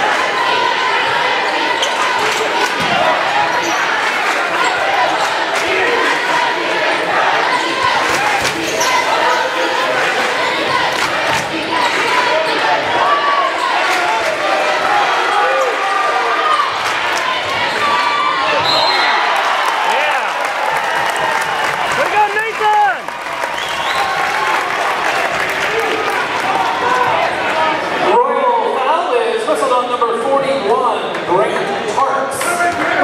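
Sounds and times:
crowd voices: 0.0s - 33.0s.

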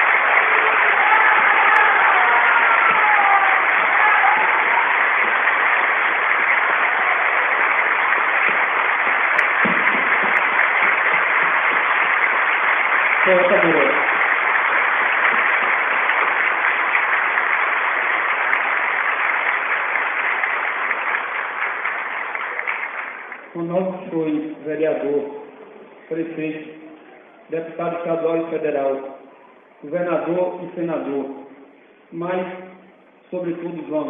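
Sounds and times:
audience applauding: 0.0s - 23.7s.

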